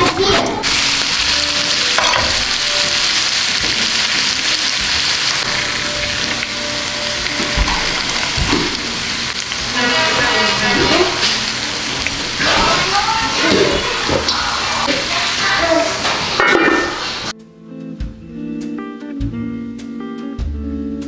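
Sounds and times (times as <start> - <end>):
chicken sizzling in a pan: 0.6 - 17.3.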